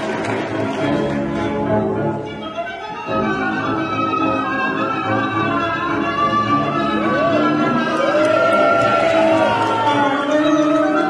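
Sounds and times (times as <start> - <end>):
tango orchestra with violins: 0.0 - 11.0.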